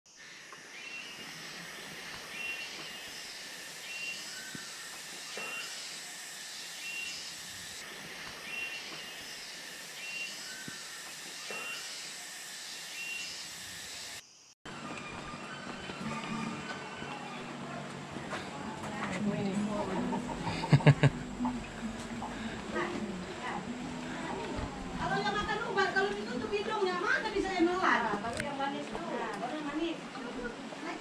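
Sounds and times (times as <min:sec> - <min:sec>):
insects hissing: 0:00.1 - 0:14.6, 0:20.0 - 0:28.1
street background: 0:14.7 - 0:31.0.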